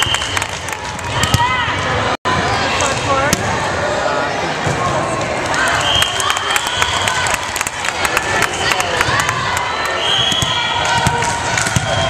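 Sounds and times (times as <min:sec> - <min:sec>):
voices in a gym: 0:01.4 - 0:12.0
volleyball bouncing and struck: 0:10.2 - 0:12.0.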